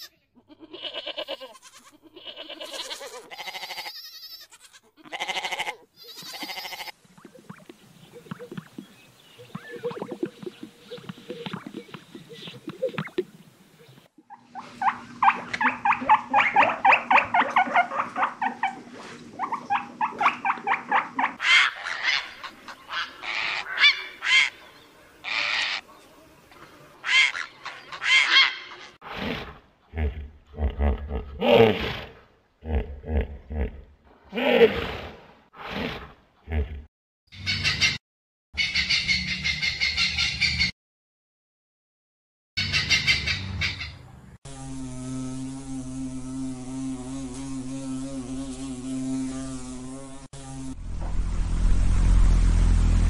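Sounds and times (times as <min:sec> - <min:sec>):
wading birds calling: 0:06.6 - 0:25.8
grouse crackling display sounds: 0:07.0 - 0:21.4
deep low grunts: 0:29.4 - 0:31.8, 0:32.6 - 0:34.8.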